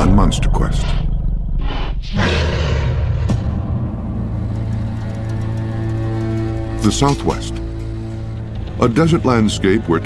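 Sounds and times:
deep rumble: 0:00.0 - 0:09.0
whoosh: 0:01.3 - 0:04.5.

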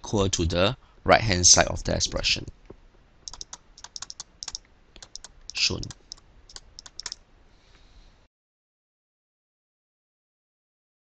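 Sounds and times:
faint hiss: 0:00.6 - 0:08.3
stylus clicking on pen tablet: 0:03.3 - 0:07.2.

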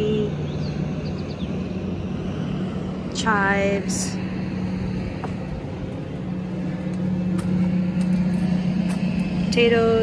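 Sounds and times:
engine humming: 0:00.0 - 0:10.0.

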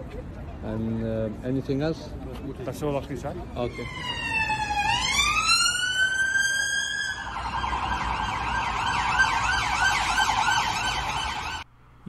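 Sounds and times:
police siren wailing and yelping: 0:03.6 - 0:11.6.

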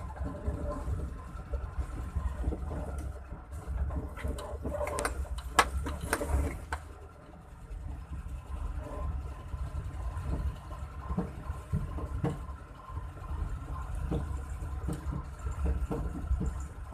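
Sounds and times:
car engine and road noise: 0:00.0 - 0:16.9.

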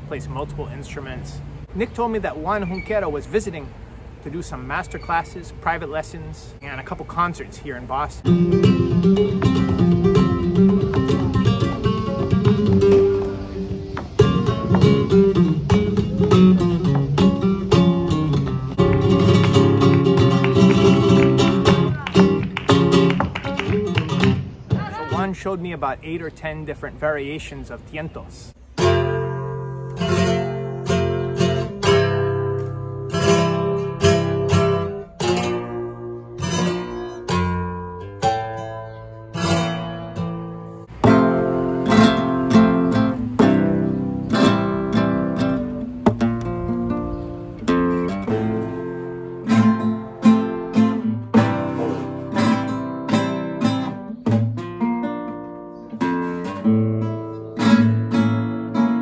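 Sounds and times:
flamenco guitar playing: 0:08.2 - 0:25.6, 0:28.6 - 0:59.0.

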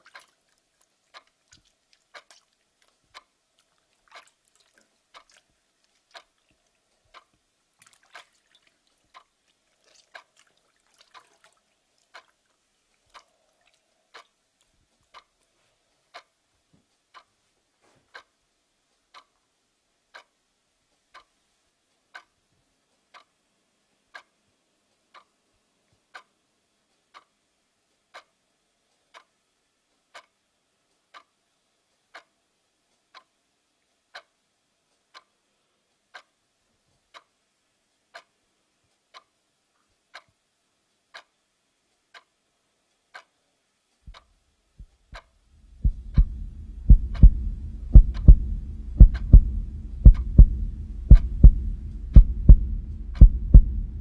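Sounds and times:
clock ticking: 0:07.1 - 0:07.4, 0:19.1 - 0:19.3, 0:20.1 - 0:20.4, 0:22.1 - 0:22.3, 0:23.1 - 0:23.3, 0:28.1 - 0:28.4, 0:34.1 - 0:34.3, 0:36.1 - 0:36.3, 0:38.1 - 0:38.4, 0:41.1 - 0:41.3, 0:45.2 - 0:54.0.

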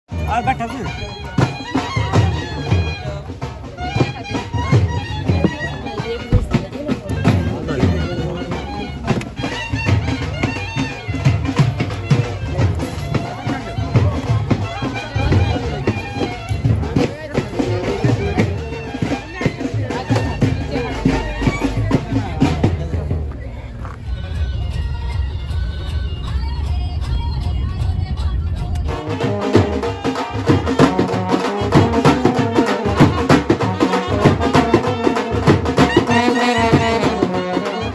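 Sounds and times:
drum strokes: 0:00.1 - 0:23.4, 0:28.6 - 0:37.9
reedy wind instrument melody: 0:00.1 - 0:26.8, 0:28.7 - 0:37.9
crowd voices: 0:00.1 - 0:37.9.

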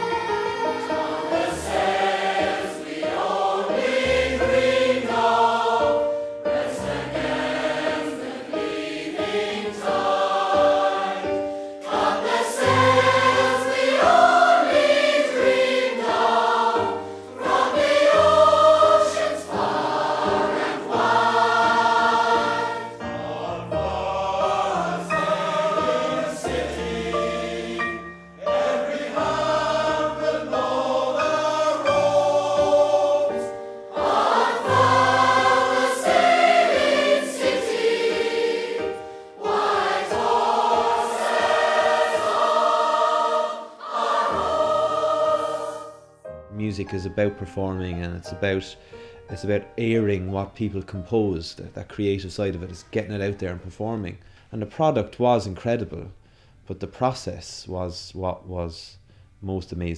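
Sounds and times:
choir singing: 0:00.0 - 0:46.2.

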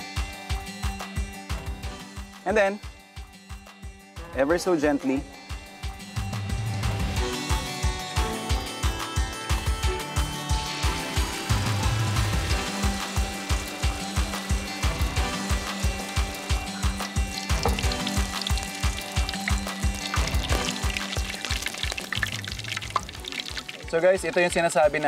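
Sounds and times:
background music with beat: 0:00.0 - 0:25.0
hot oil sizzling: 0:10.5 - 0:24.8.

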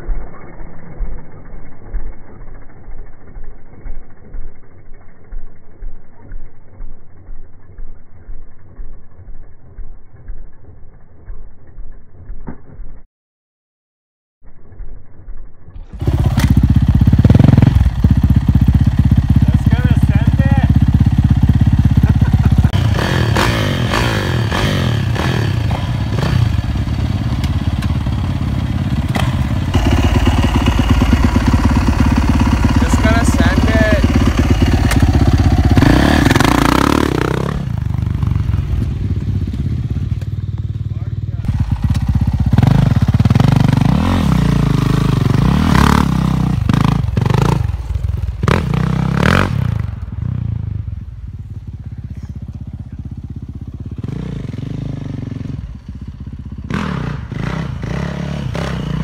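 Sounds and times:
dirt bike engine revving: 0:15.8 - 0:51.1, 0:52.3 - 0:59.0.

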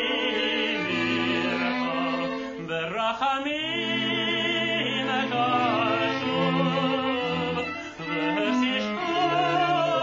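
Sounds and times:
man singing long held notes: 0:00.0 - 0:10.0
bowed strings: 0:03.7 - 0:10.0.

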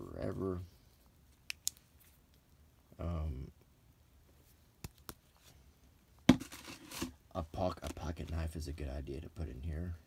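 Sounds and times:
packaging rustle and scrape: 0:06.3 - 0:07.2.

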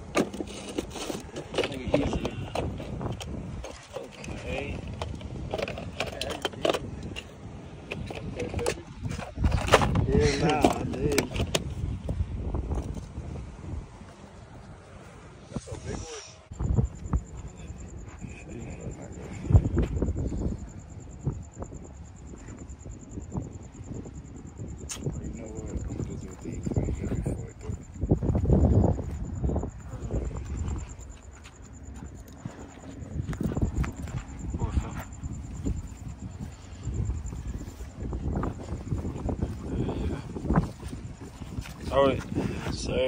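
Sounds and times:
indistinct voices: 0:28.8 - 0:40.8.

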